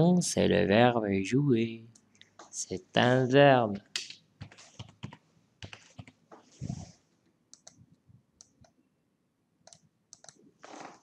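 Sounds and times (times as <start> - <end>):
keyboard typing: 3.8 - 6.2, 7.5 - 8.8, 9.6 - 10.4
mouse clicks: 7.5 - 7.8, 9.6 - 10.4.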